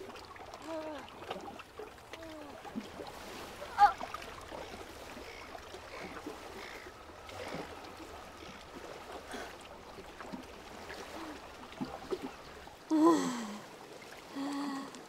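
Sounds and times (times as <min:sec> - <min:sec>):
water lapping against jetty: 0:00.0 - 0:15.0.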